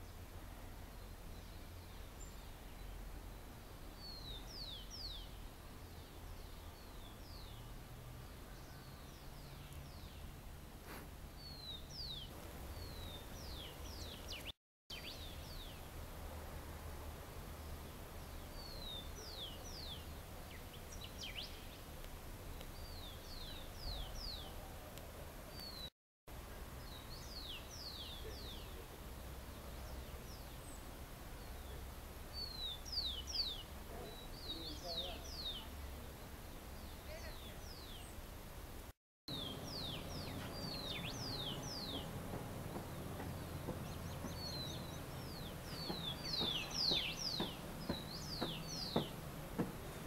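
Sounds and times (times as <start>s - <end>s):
small birds chirping: 0.0s - 16.0s, 17.5s - 25.9s, 26.5s - 38.4s, 39.3s - 50.0s.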